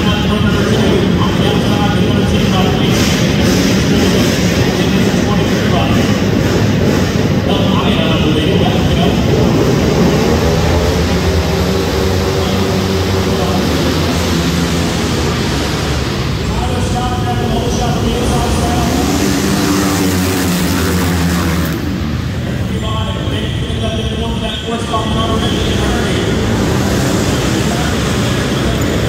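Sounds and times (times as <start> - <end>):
motorcycle engines revving: 0.0 - 29.0.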